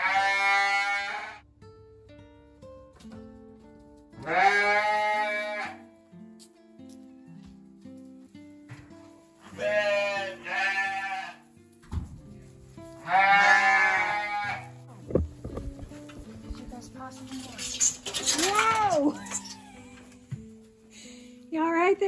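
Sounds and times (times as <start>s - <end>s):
sheep bleating: 0.0s - 1.4s, 4.2s - 5.9s, 9.4s - 11.4s, 13.0s - 14.8s
guitar music: 0.0s - 22.0s.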